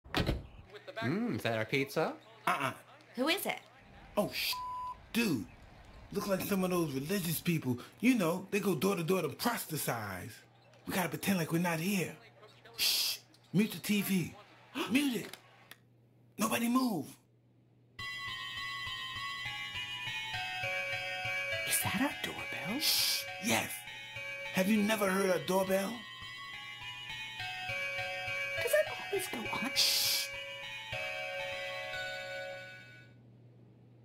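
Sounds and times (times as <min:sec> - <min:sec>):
musical doorbell chime melody: 0:18.0 - 0:33.2.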